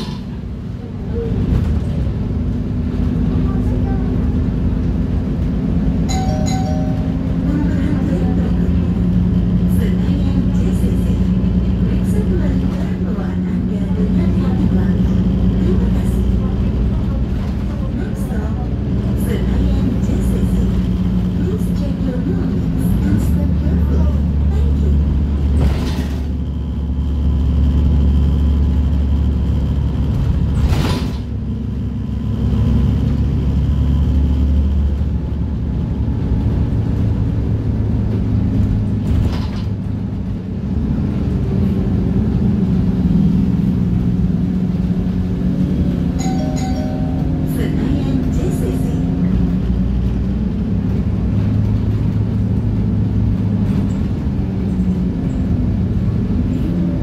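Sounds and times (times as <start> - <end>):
bus drivetrain hum: 0.0 - 57.0
road noise: 0.0 - 57.0.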